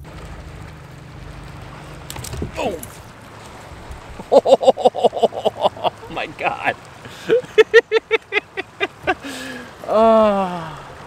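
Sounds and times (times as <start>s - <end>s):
wind and water washing: 0.0s - 11.0s.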